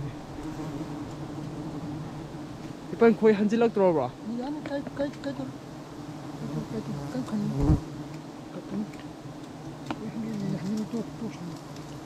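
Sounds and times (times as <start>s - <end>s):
bees buzzing: 0.0s - 12.0s.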